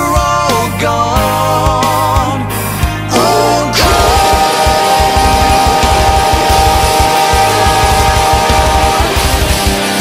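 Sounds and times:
rapid double-kick drumming: 3.8s - 9.9s.

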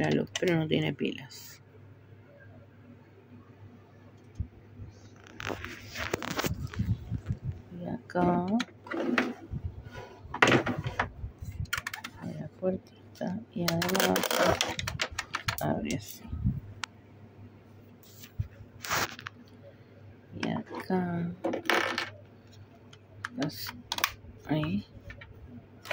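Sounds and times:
plastic scraping: 5.1s - 7.4s, 8.5s - 12.3s, 13.7s - 15.6s
plastic toy rustling scrape: 18.8s - 19.3s.

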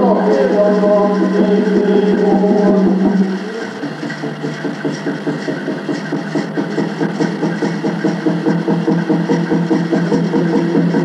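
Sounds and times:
water drum beaten fast: 0.0s - 11.0s.

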